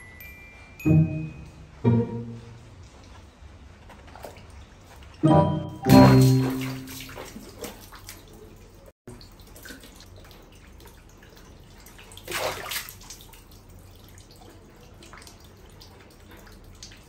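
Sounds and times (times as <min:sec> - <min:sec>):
short ringing musical tone: 0:00.0 - 0:02.6, 0:05.2 - 0:07.0
faint water drips: 0:02.5 - 0:05.2, 0:06.2 - 0:17.0
water splashing in plastic basin: 0:05.8 - 0:17.0.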